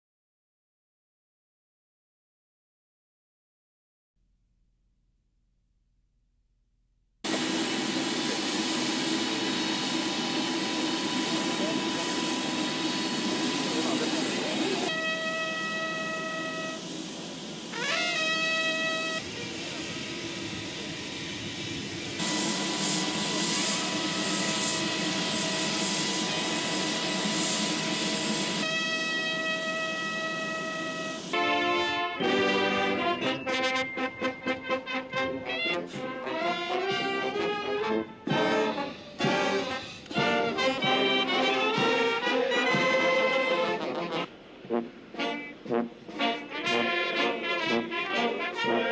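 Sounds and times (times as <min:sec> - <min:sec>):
jet engines roaring: 0:07.3 - 0:48.9
brass band playing: 0:12.8 - 0:16.8, 0:17.7 - 0:19.5, 0:28.1 - 0:48.9.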